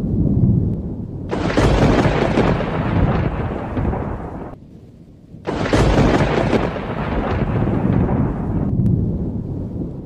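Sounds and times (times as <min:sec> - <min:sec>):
loud thunder rumble: 0:01.3 - 0:04.6, 0:05.5 - 0:10.0
sharp thunder crack: 0:01.3 - 0:04.6, 0:05.5 - 0:09.4.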